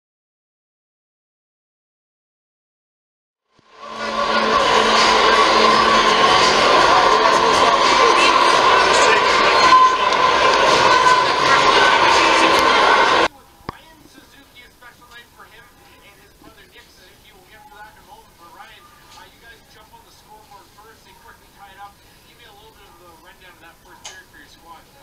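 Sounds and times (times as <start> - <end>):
blaring goal horn: 3.6 - 13.3
crowd cheering: 3.6 - 13.3.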